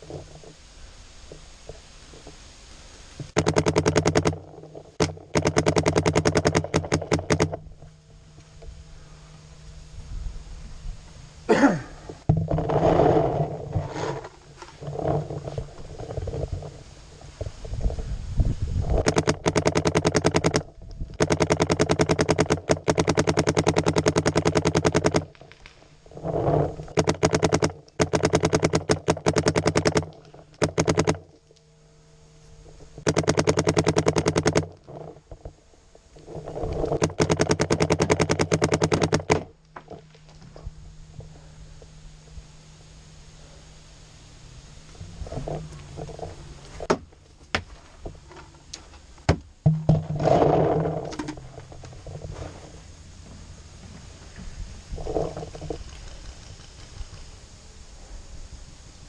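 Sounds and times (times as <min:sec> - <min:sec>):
paintball marker rapid firing: 0:03.4 - 0:04.4, 0:05.0 - 0:07.6, 0:19.0 - 0:25.3, 0:26.9 - 0:31.2, 0:33.0 - 0:34.8, 0:37.0 - 0:39.5.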